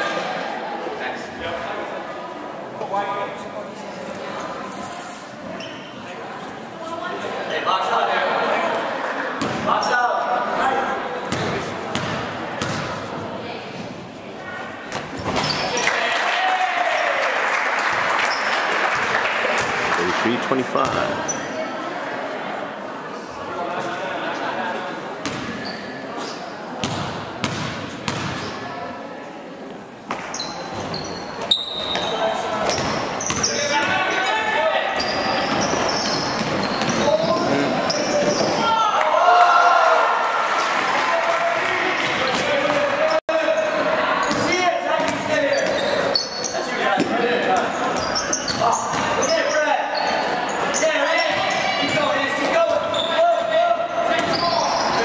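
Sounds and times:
voices echoing in gymnasium: 0.0s - 55.0s.

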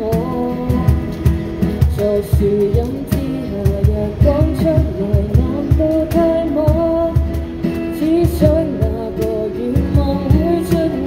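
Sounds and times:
woman singing: 0.0s - 1.2s, 1.8s - 11.0s
acoustic guitar: 0.0s - 11.0s
cajon thumps: 0.0s - 11.0s.

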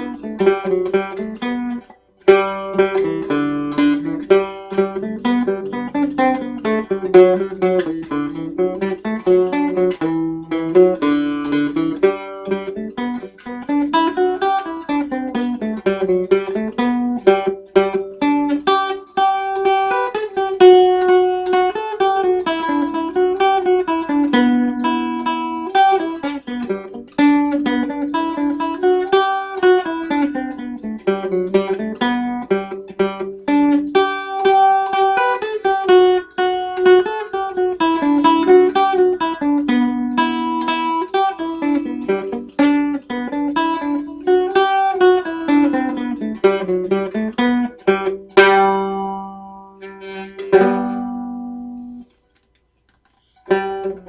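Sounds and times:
strummed chord ringing: 0.0s - 52.2s
cittern picked melody: 0.0s - 52.4s, 53.1s - 54.0s.

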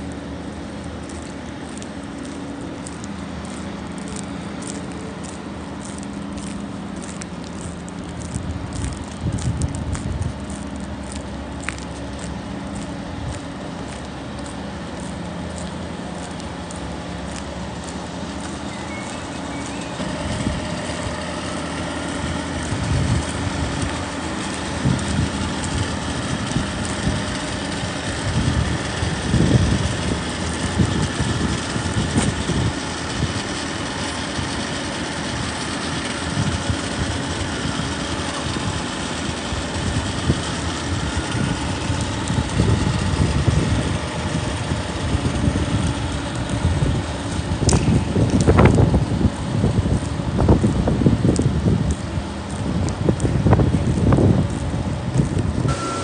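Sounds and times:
wind rumbling on microphone: 0.0s - 55.8s
snow sweeper engine humming: 0.0s - 56.0s.

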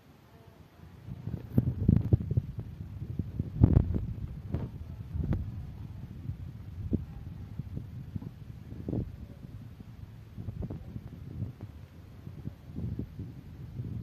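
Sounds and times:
phone microphone handling noise: 1.2s - 2.8s, 3.5s - 5.5s.

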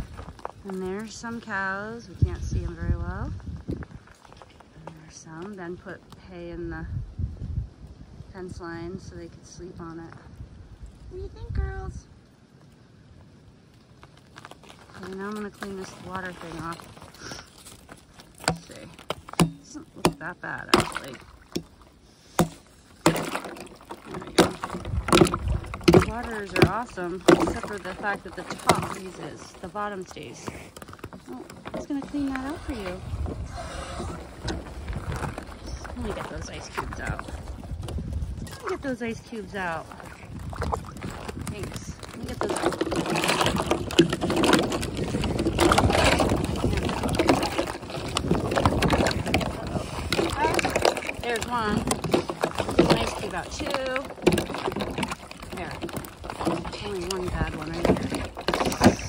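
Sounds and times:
water sloshing in a bowl: 15.0s - 59.0s
ice pieces knocking and clicking: 22.4s - 32.4s, 40.4s - 59.0s.

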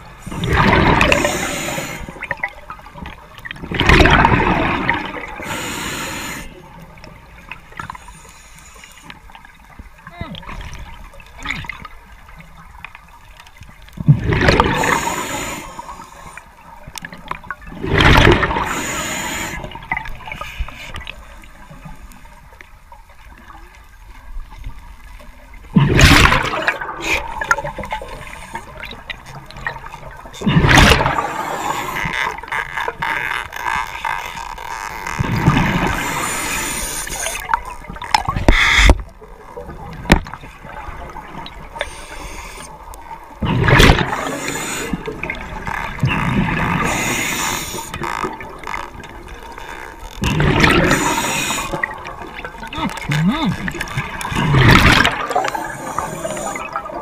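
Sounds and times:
underwater crackle: 0.0s - 57.0s
rush of exhaled bubbles: 0.2s - 6.4s, 14.0s - 15.8s, 17.7s - 20.4s, 25.7s - 29.1s, 30.4s - 32.0s, 43.4s - 48.6s, 50.2s - 57.0s
diver breathing through regulator: 1.0s - 2.3s, 5.4s - 6.6s, 14.6s - 16.5s, 18.5s - 21.0s, 31.1s - 32.1s, 35.8s - 37.4s, 41.8s - 42.8s, 44.1s - 45.4s, 46.7s - 48.0s, 50.6s - 52.0s, 55.2s - 56.9s.

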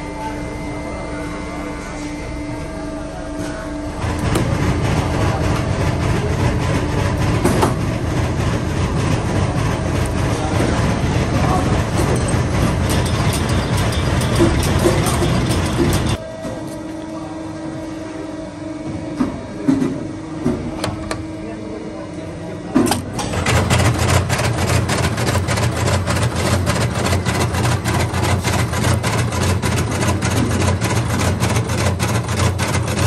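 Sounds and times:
quiet machine hum: 0.0s - 33.0s
machine rumbling and rattling: 3.9s - 17.1s, 22.8s - 33.0s.

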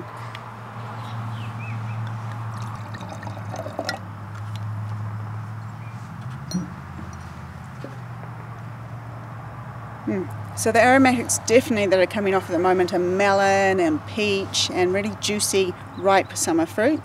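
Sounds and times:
wine pouring into glass: 2.3s - 4.0s.

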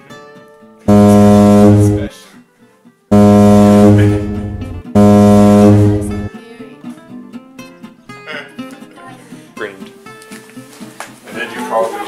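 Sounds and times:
low buzzing horn blasts: 0.9s - 2.1s, 3.1s - 6.3s.

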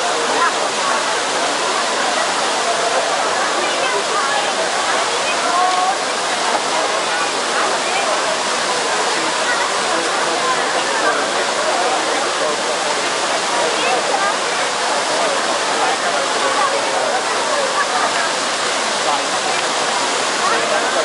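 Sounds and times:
crowd talking: 0.0s - 21.0s
fountain water rushing: 0.0s - 21.0s.

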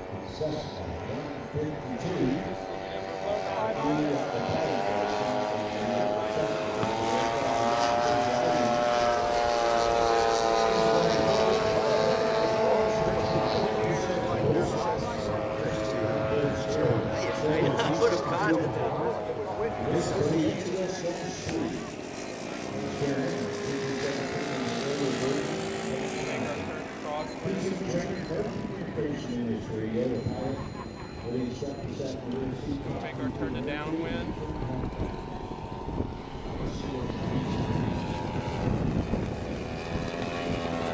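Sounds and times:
model plane engine droning: 0.0s - 40.9s.

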